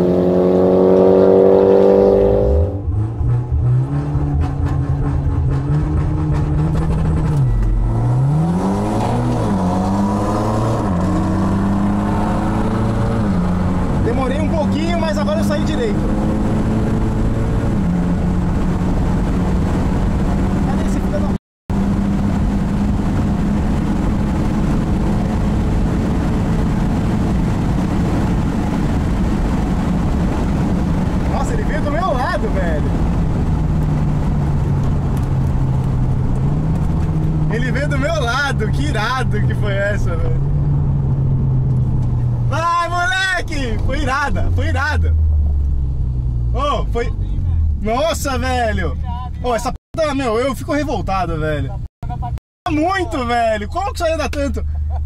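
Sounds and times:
car engine at speed: 0.0 - 49.6
road and wind noise: 0.0 - 55.0.

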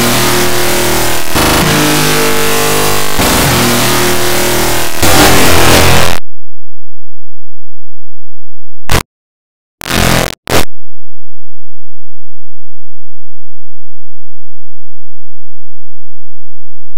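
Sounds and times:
distorted looping music: 0.0 - 6.2, 9.8 - 10.7.

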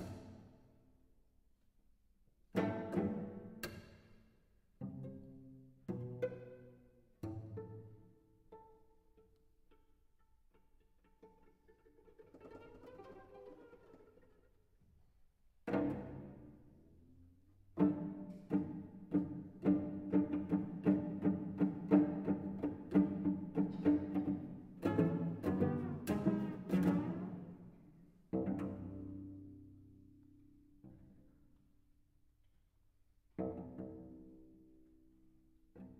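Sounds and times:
soft solo cello: 2.5 - 15.0, 15.6 - 31.7, 33.2 - 35.9.

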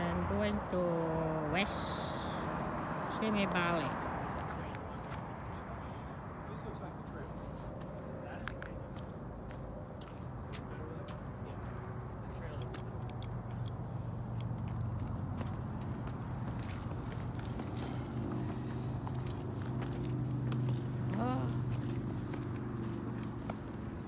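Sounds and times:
distant freeway traffic: 0.0 - 24.0
footsteps on rock: 14.6 - 24.0.

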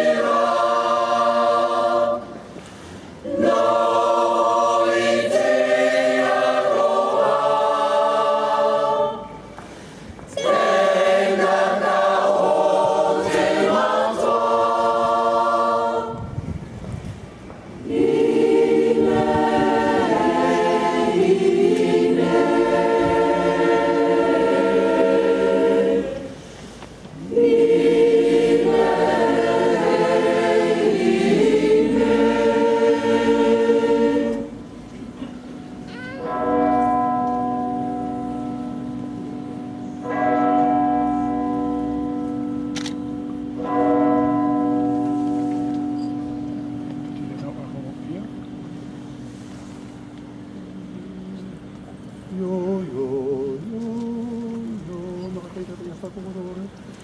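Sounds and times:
choir singing: 0.0 - 2.6, 3.2 - 9.6, 10.3 - 16.5, 17.8 - 46.8, 48.8 - 55.4.

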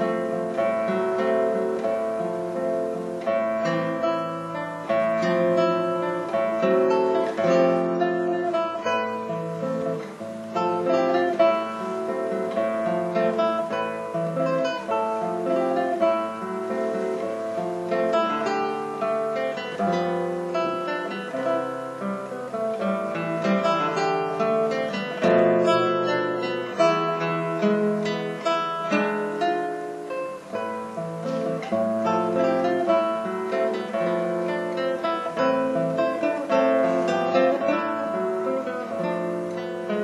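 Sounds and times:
solo classical guitar: 0.0 - 40.0.

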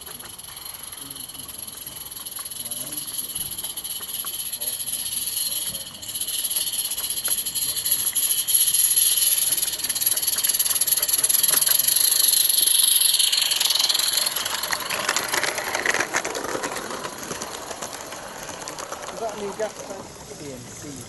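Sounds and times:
steam locomotive hissing: 0.0 - 21.0.

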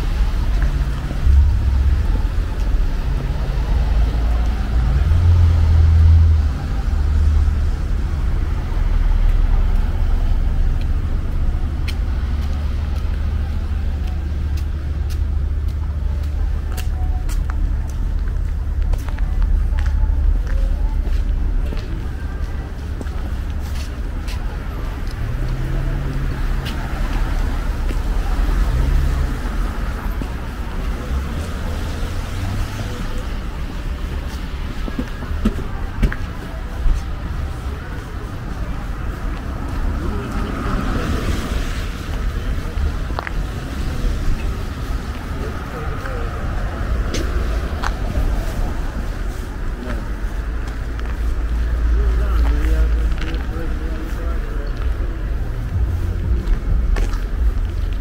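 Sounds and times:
cars driving past: 0.0 - 58.0.

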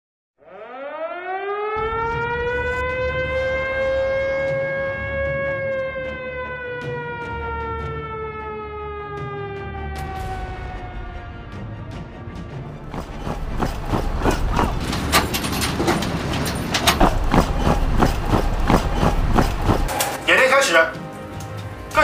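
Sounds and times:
siren wailing: 0.4 - 11.6
low rumble: 12.8 - 19.9.

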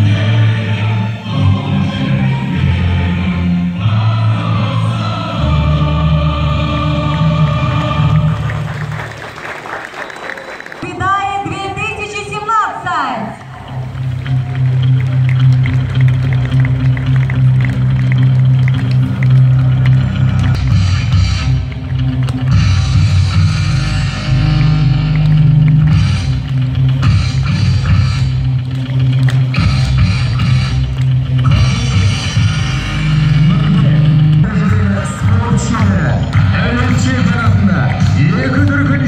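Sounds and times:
loud music with heavy bass: 0.0 - 9.1, 12.9 - 39.0.

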